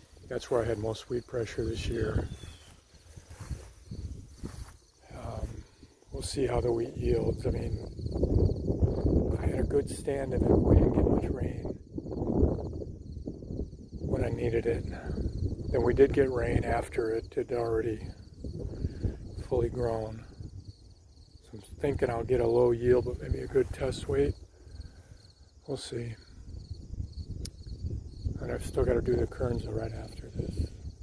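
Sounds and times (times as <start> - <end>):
wind buffeting microphone: 0.0 - 25.4, 26.0 - 31.0
crickets chirping: 0.0 - 31.0.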